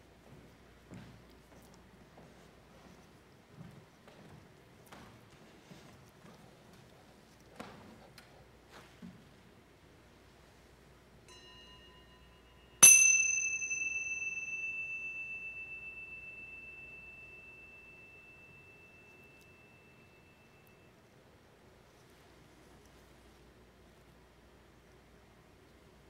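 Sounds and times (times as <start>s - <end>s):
small bell ringing: 11.3s - 20.9s.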